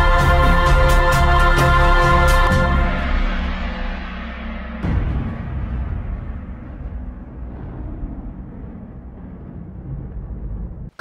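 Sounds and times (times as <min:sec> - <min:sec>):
deep cinematic rumble: 0:00.0 - 0:11.0.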